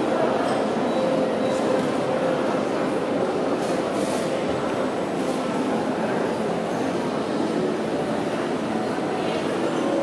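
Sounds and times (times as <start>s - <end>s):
constant hall roar: 0.0s - 10.0s.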